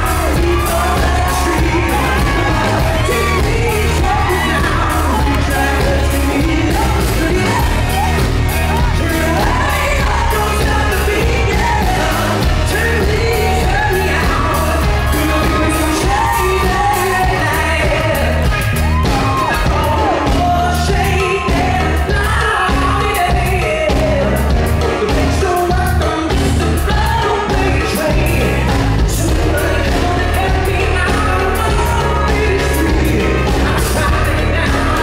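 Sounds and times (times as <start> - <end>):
backing band playing: 0.0 - 35.0
man singing pop song: 0.0 - 35.0.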